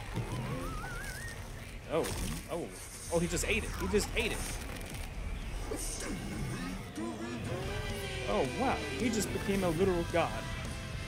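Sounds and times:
voice: 1.9 - 4.6, 8.3 - 10.5.

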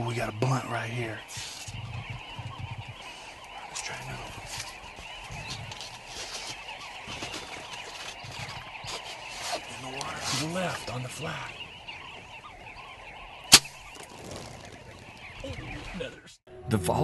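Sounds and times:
flock of birds calling: 0.0 - 17.0.

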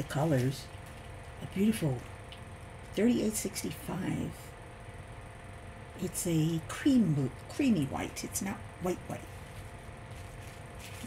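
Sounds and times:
plastic bags rustling: 0.0 - 1.4, 9.2 - 11.0
steady low hum: 0.0 - 11.0.

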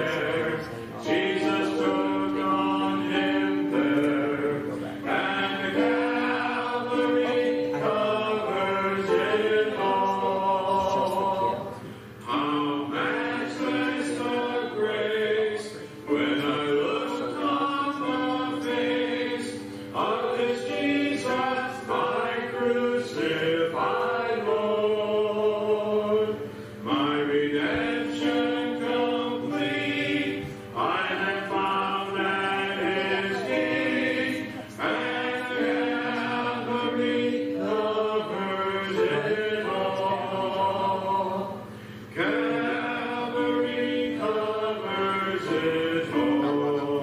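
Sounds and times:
congregation singing a hymn: 0.0 - 47.0.

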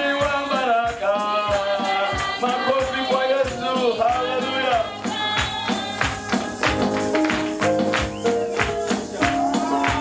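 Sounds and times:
tambourine beat: 0.0 - 10.0.

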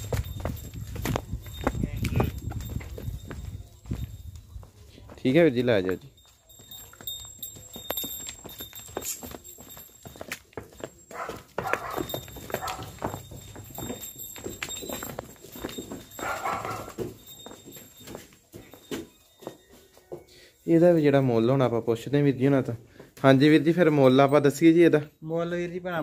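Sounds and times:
cow hooves on hard ground: 0.0 - 24.7.

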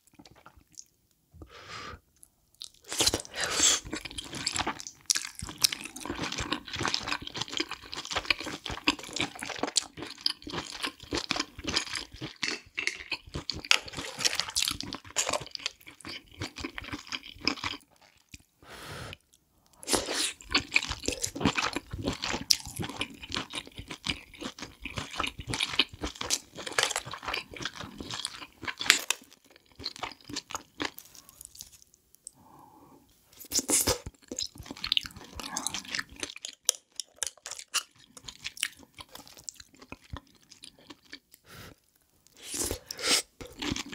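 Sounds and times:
close-up chewing: 2.6 - 18.5, 19.2 - 32.0, 33.4 - 43.9.

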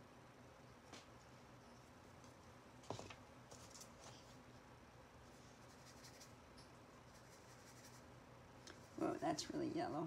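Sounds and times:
paintbrush scratching on palette: 5.3 - 6.4, 7.0 - 8.1.

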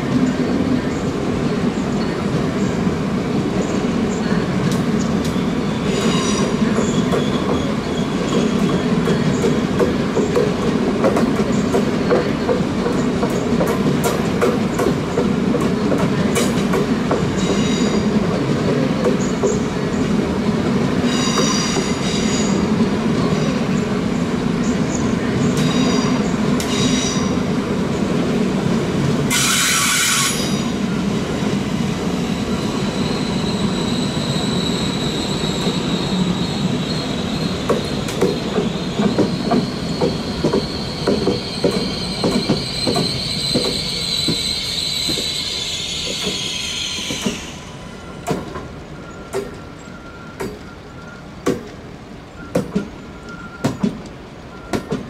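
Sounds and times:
train rolling rumble: 0.0 - 55.0
train wheels squealing on rails: 0.2 - 23.8, 24.6 - 27.6, 29.0 - 51.4, 52.2 - 55.0
loud air hiss: 29.3 - 30.8.

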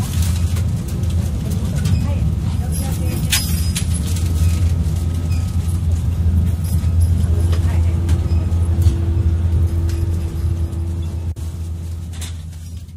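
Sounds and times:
train rumbling: 0.0 - 12.9.

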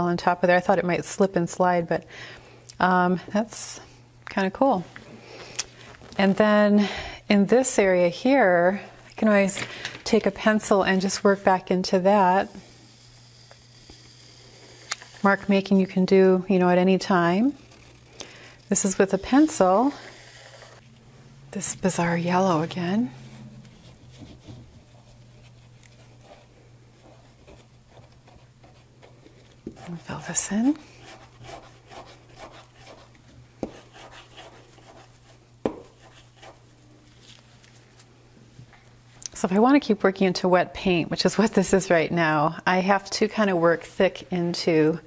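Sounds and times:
low steady hum: 0.0 - 45.0
pencil scratching on wax: 17.2 - 20.8, 29.7 - 36.6.

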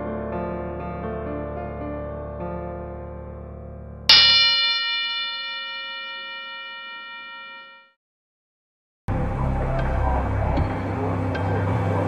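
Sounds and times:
boxing ring bell ringing: 4.1 - 7.9.

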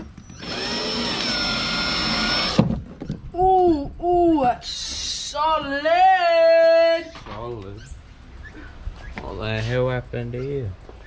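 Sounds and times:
power drill driving a screw: 0.0 - 2.6.

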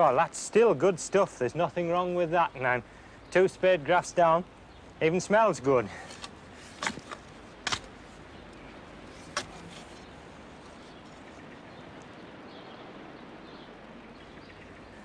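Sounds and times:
faint outdoor hiss: 0.0 - 15.0
spade knocking in soil: 6.0 - 7.9, 9.1 - 10.1.

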